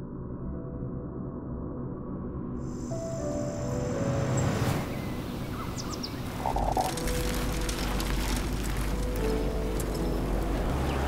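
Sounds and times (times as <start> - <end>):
cinematic background music: 0.3 - 11.0
deep low rumble: 6.3 - 11.0.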